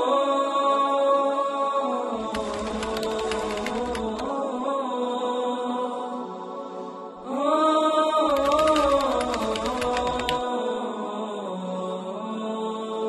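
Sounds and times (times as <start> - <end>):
fast percussion hits: 2.2 - 4.3, 8.3 - 10.4.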